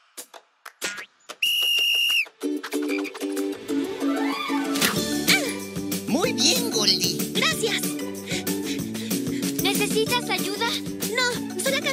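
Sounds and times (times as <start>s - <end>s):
held whistle note: 1.4s - 2.3s.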